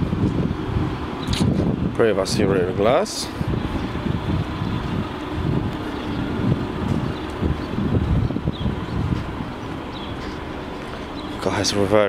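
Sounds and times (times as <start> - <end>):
wind buffeting the microphone: 0.0 - 12.0.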